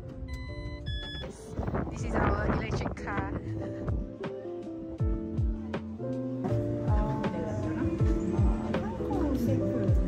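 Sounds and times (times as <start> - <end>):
background music with low notes: 0.0 - 10.0.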